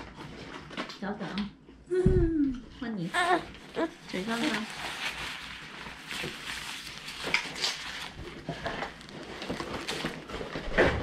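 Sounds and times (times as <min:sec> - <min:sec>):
fabric rustling: 0:03.1 - 0:10.8.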